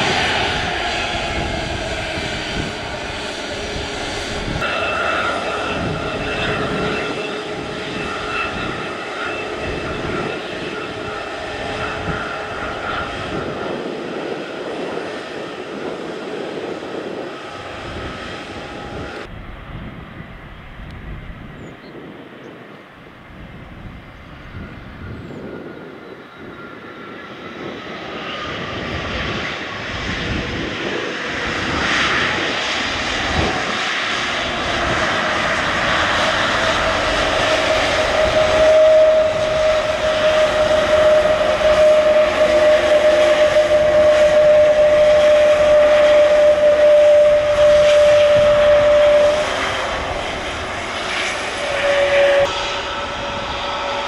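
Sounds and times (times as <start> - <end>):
jet engine whine: 0.0 - 54.0
landing jet engine: 0.0 - 54.0.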